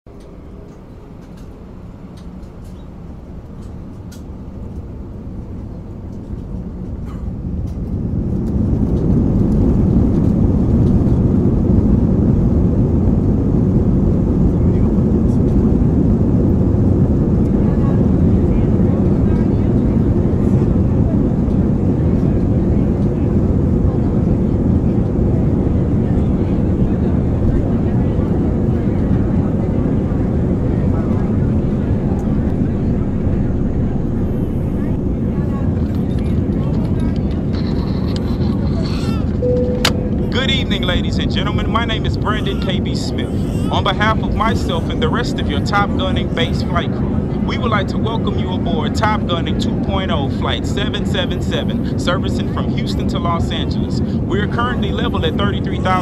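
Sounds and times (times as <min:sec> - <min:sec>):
jet engine rumble: 0:00.1 - 0:56.0.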